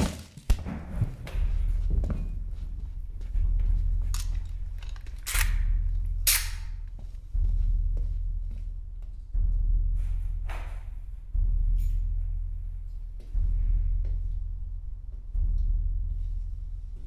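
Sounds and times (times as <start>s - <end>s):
deep booming bass pulse: 0.5s - 17.0s.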